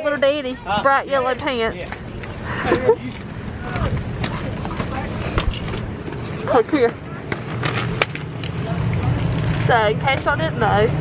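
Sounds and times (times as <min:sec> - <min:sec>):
faint voices: 0:00.0 - 0:11.0
vehicle rolling over gravel: 0:03.1 - 0:10.3.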